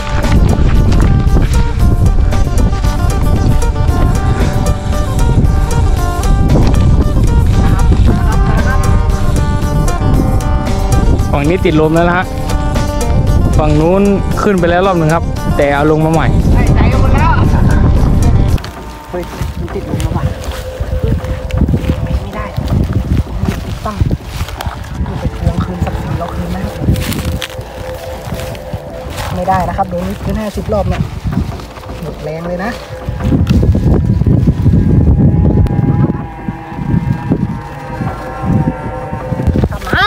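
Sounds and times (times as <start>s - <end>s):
light wind noise: 0.0s - 40.0s
wind buffeting microphone: 0.0s - 40.0s.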